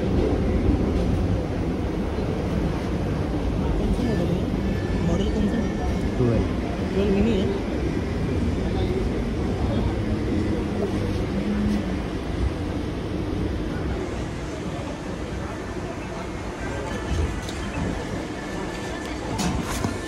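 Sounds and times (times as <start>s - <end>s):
passengers' voices: 0.0s - 20.0s
train rumble and rattle: 0.0s - 20.0s.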